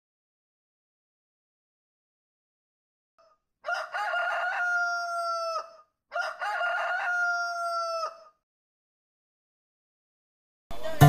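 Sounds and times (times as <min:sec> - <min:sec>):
rooster crowing: 0:03.2 - 0:08.4.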